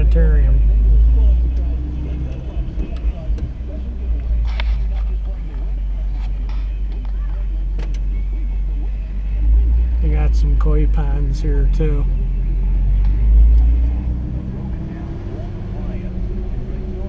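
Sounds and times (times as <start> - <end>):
car engine low rumble: 0.0 - 17.0.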